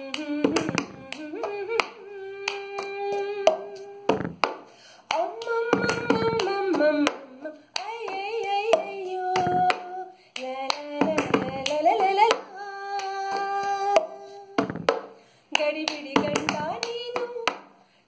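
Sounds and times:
hand claps: 0.0 - 17.7
woman singing: 0.0 - 17.7.

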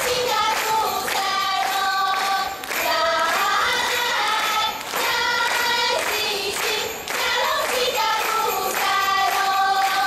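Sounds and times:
group singing a folk melody: 0.0 - 10.0.

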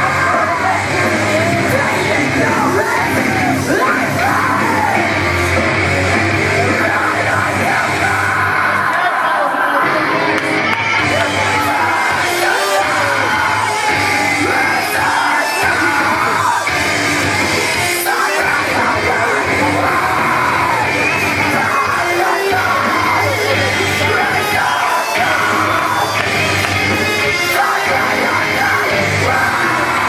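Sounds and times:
heavy rock music with yelled vocals: 0.0 - 30.0.

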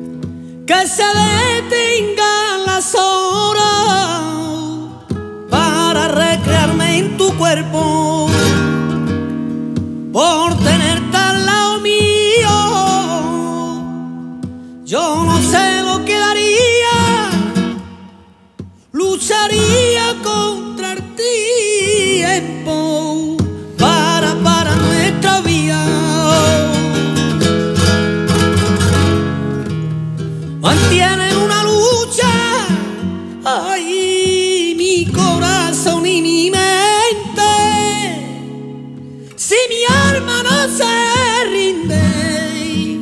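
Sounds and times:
flamenco guitar strumming: 0.0 - 43.0
person singing: 0.7 - 8.5, 10.2 - 18.0, 18.9 - 27.2, 30.6 - 38.6, 39.3 - 43.0.

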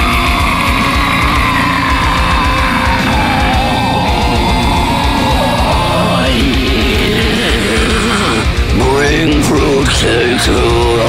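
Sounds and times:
heavy metal music: 0.0 - 11.0.

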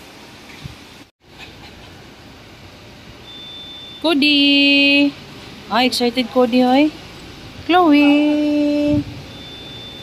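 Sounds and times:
background hum and hiss: 0.0 - 10.0
thin high tone: 7.8 - 10.0.

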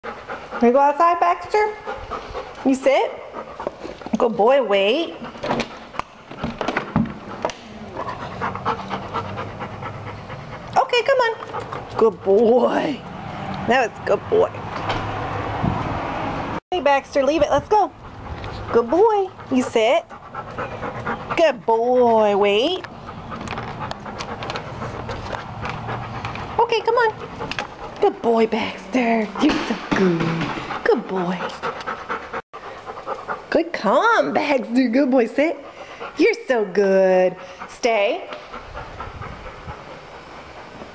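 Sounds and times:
dog panting: 0.0 - 15.6, 16.8 - 40.9.

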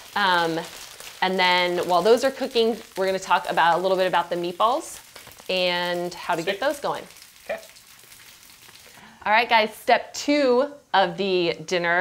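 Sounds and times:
potatoes sizzling in a skillet: 0.0 - 12.0.

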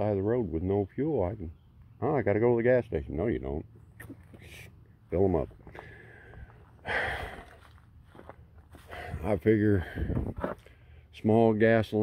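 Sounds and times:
man breathing out: 5.7 - 7.7.

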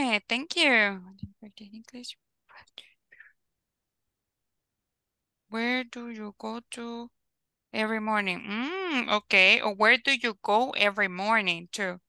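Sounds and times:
faint whispering: 1.1 - 3.4.

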